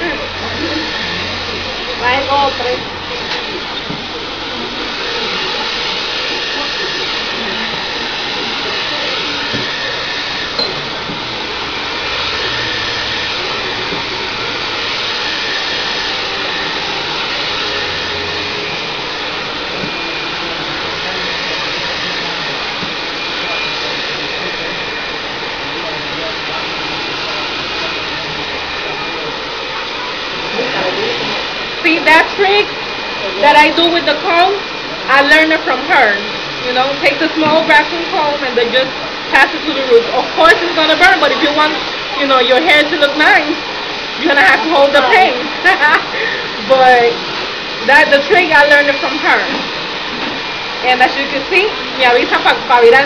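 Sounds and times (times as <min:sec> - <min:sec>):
hair dryer running: 0:00.0 - 0:53.0.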